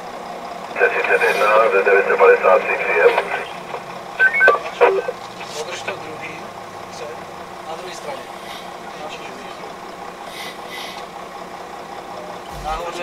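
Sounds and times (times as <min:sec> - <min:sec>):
vehicle engine running: 0:00.0 - 0:13.0
faint voices: 0:00.6 - 0:11.1.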